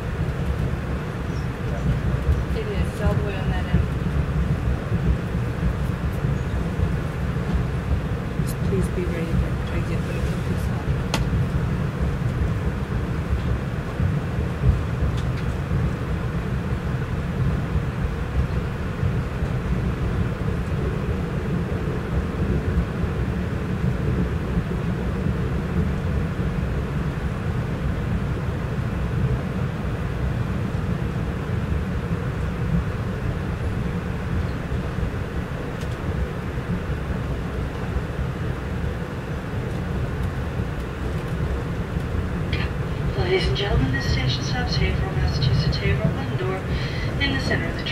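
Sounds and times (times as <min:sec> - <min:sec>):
train wheels rumbling on rails: 0:00.0 - 0:47.9.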